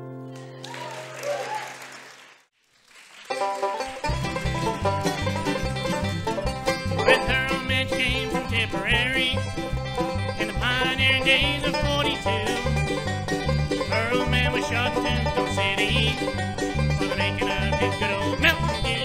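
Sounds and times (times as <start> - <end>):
banjo: 3.3 - 19.0
fiddle: 3.3 - 19.0
mandolin: 3.3 - 19.0
guitar: 3.4 - 19.0
upright bass: 3.4 - 19.0.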